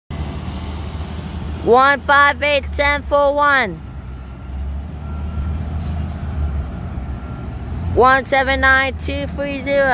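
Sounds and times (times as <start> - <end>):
truck engines rumbling: 0.1 - 9.9.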